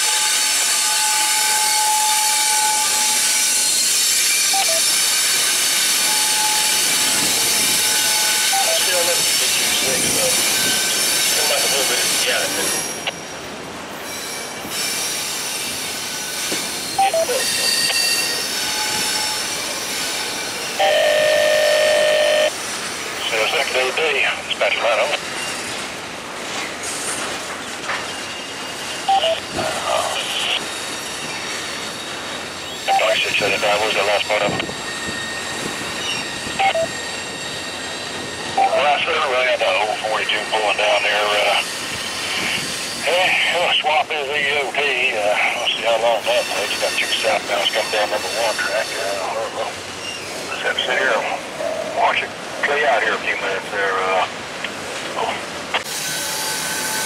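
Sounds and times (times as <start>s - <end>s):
steel wheels squealing: 0.0s - 23.6s, 25.2s - 25.9s, 26.6s - 43.7s, 45.3s - 51.9s, 55.8s - 57.0s
rumble of train cars: 0.0s - 57.0s.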